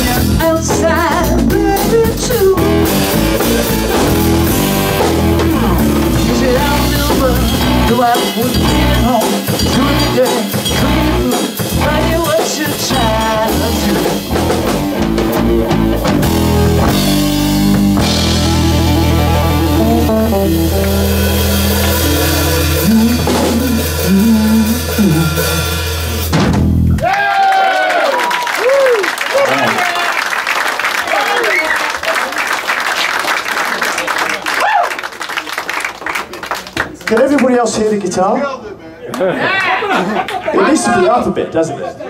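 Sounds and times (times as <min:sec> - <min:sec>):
electric guitar: 0:00.0 - 0:27.0
bass guitar: 0:00.0 - 0:27.3
drum kit: 0:00.0 - 0:27.6.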